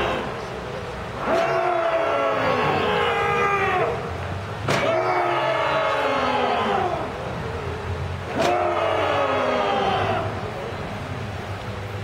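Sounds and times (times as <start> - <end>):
people yelling: 0.0 - 0.5, 1.2 - 7.5, 8.2 - 10.8.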